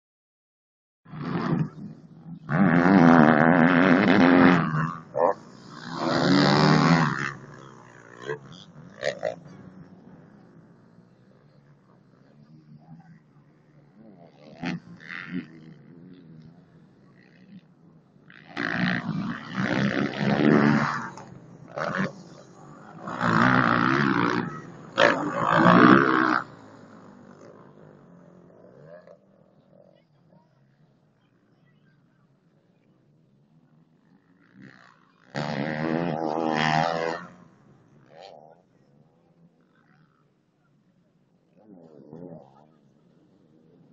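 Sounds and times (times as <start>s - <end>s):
motocross bike engines revving: 1.1s - 43.9s.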